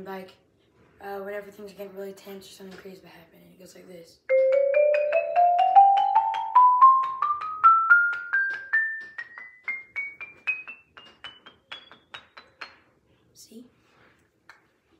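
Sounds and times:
xylophone rising run: 4.3 - 12.4.

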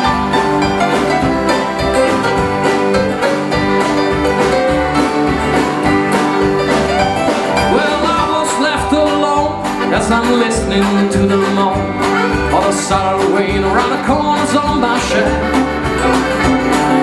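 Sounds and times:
fiddle: 0.0 - 17.0
folk band playing: 0.0 - 17.0.

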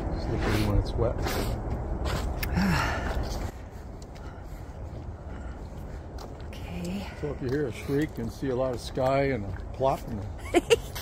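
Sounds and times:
steady low rumble: 0.0 - 11.0
person gasping: 2.4 - 3.5.

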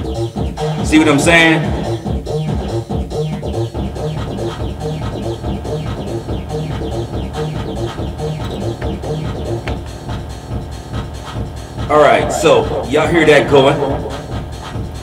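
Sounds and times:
synth notes: 0.0 - 9.9, 11.9 - 15.0
repeating bass line: 0.0 - 10.2, 11.9 - 15.0
electronic drum beat: 0.0 - 15.0.

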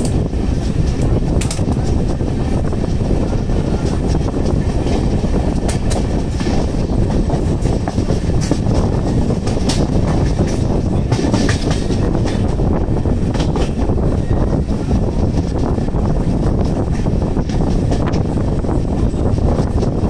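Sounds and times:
train wheels rumbling on rails: 0.0 - 20.0.

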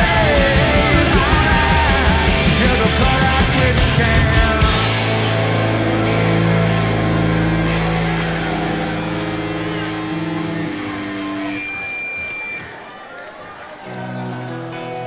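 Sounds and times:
electric guitar chords: 0.0 - 12.2
electric guitar chord ringing: 4.6 - 11.7.

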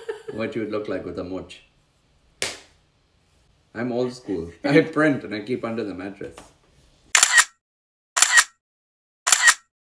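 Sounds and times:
camera shutter clicking: 7.2 - 7.5, 8.2 - 8.6, 9.3 - 9.7.

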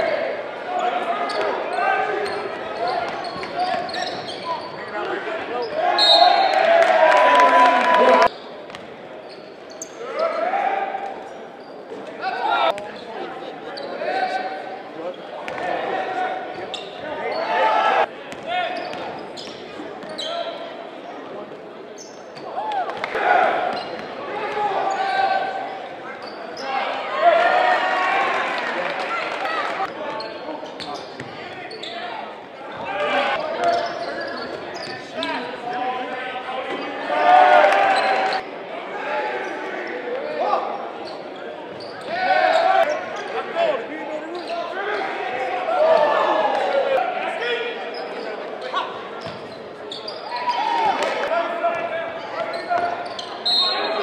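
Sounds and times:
shouts and chatter echoing: 0.0 - 54.0.

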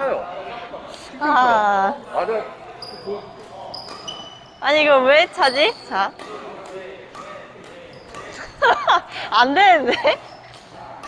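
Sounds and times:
racket hitting shuttlecock: 5.4 - 9.2.

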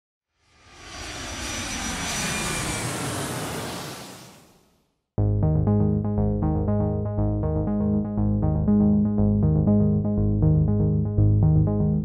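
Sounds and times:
jet aircraft passing overhead: 0.4 - 4.6.

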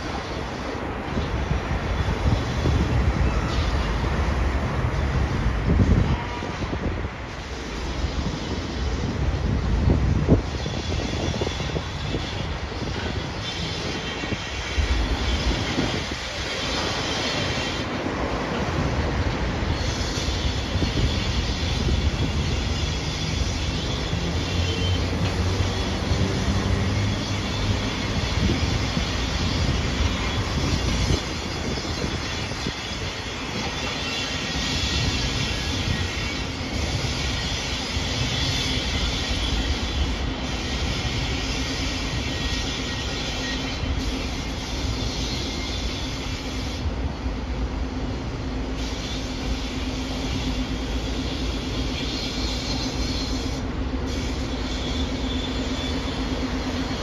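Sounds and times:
high wheel squeal: 0.0 - 47.1, 48.6 - 57.0
steel wheels clacking over rail joints: 0.0 - 57.0.

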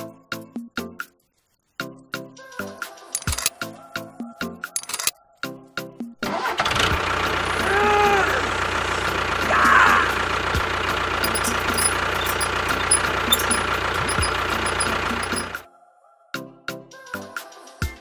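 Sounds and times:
motor running: 10.6 - 15.6.

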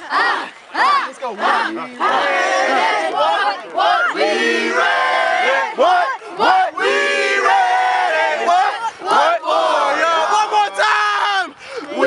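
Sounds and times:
group shouting a chant: 0.0 - 12.0.

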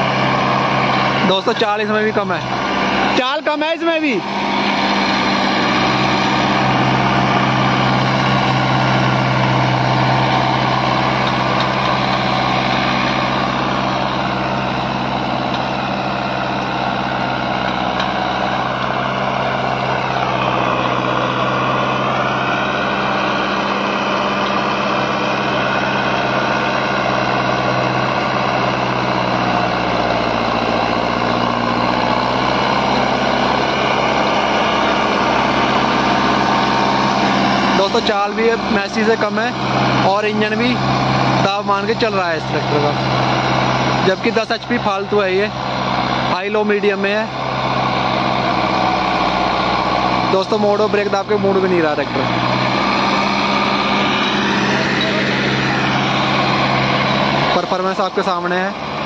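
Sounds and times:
tractor diesel engine under load: 0.0 - 59.0.

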